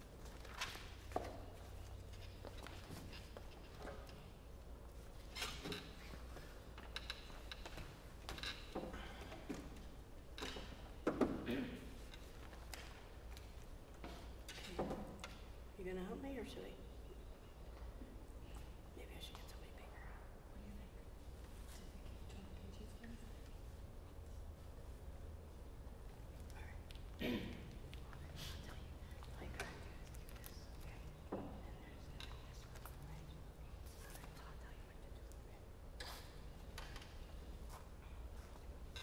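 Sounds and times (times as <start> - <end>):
low room hum: 0.0 - 39.0
faint whispering: 18.4 - 23.8, 26.4 - 27.0, 27.7 - 36.3.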